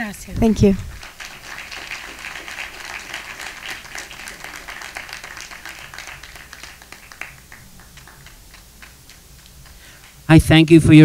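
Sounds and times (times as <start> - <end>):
audience applauding: 0.9 - 10.3.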